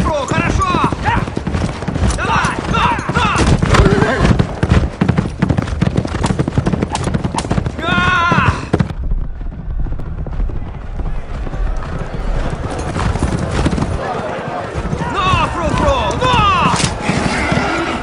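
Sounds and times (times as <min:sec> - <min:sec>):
horses galloping hoofbeats: 0:00.0 - 0:18.0
horse whinnying: 0:03.4 - 0:04.4, 0:16.4 - 0:18.0.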